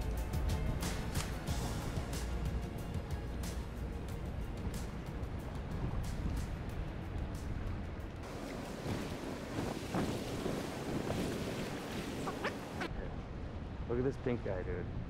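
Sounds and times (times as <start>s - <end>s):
background music with ticking beat: 0.0s - 8.2s
wind buffeting microphone: 4.2s - 13.9s
fast choppy river rushing: 4.2s - 15.0s.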